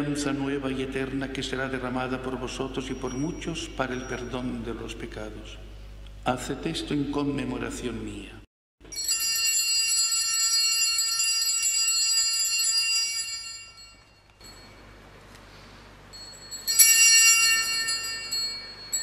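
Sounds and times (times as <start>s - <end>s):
altar bells ringing: 2.4s - 5.0s, 8.8s - 19.0s.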